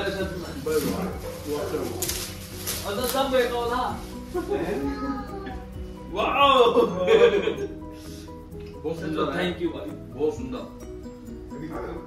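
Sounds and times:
wrapping paper tearing: 0.0s - 5.0s.

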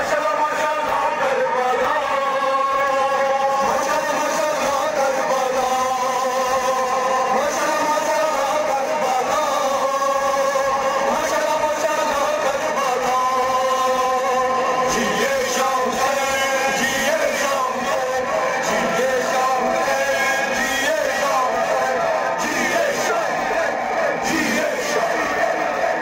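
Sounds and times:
man chanting over loudspeakers: 0.0s - 26.0s.

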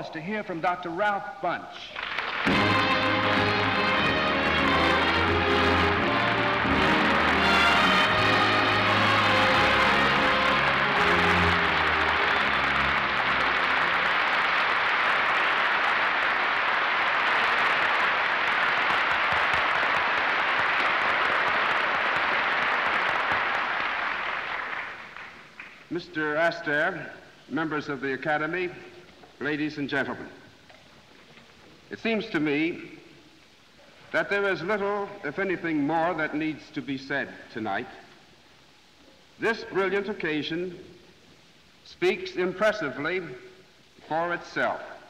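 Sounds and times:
audience applause: 1.9s - 25.8s
orchestra playing: 2.5s - 14.3s.

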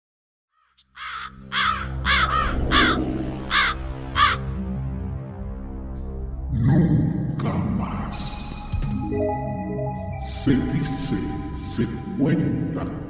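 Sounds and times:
crow cawing: 0.5s - 4.6s
low droning music: 0.8s - 13.0s.

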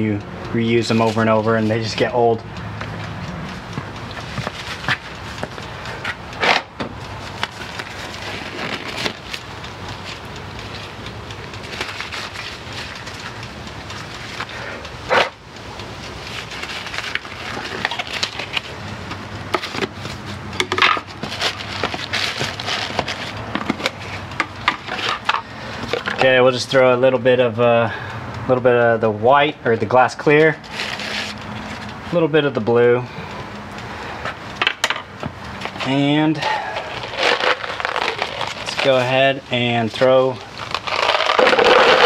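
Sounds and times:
nitrile gloves crinkling: 7.2s - 14.6s, 15.8s - 26.2s, 30.6s - 32.0s, 35.6s - 42.0s.

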